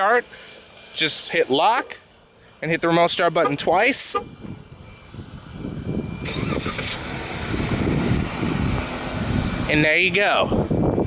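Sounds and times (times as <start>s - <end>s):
car engine starting and running: 0.0s - 11.0s.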